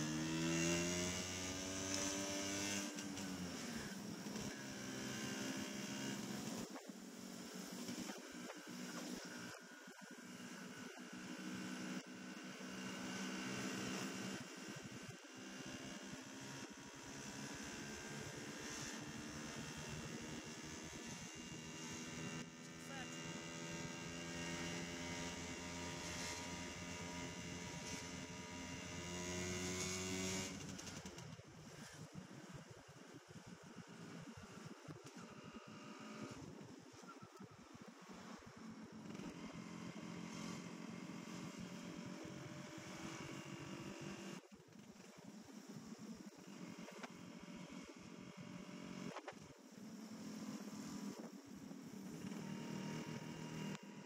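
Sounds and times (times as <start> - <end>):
wind and road noise: 0.0 - 54.0.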